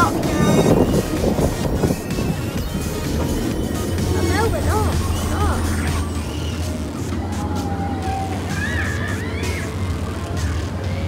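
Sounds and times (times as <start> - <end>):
steady low hum: 0.0 - 7.4
rising and falling pitched notes: 0.0 - 8.4
background music: 0.0 - 11.0
voices: 0.0 - 11.0.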